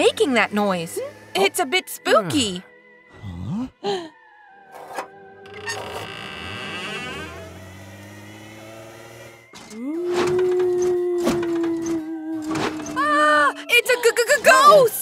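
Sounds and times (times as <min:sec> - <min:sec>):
eerie music: 0:00.0 - 0:15.0
door opening: 0:04.7 - 0:08.3
ghostly wail: 0:09.6 - 0:13.8.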